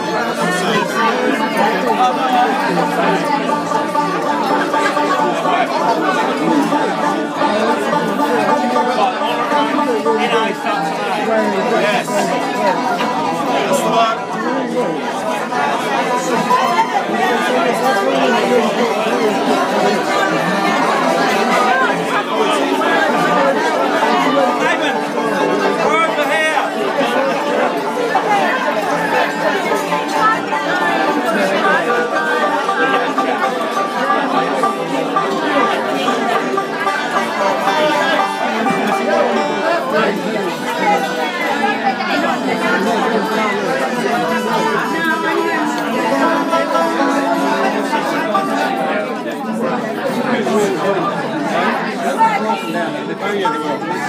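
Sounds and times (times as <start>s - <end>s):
guitar being tuned: 0.0s - 51.5s, 53.4s - 54.0s
crowd chattering: 0.0s - 54.0s
faint steady instrument notes: 0.0s - 54.0s.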